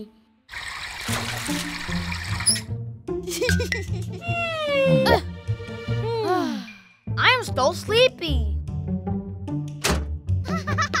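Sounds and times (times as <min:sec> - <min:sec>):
cartoon tap water running: 0:00.5 - 0:02.8
light background music: 0:00.9 - 0:11.0.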